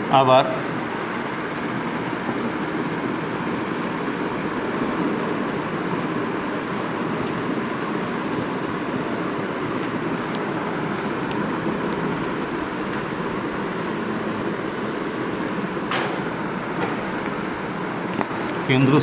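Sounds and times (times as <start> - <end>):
room hum and hiss: 0.0 - 19.0.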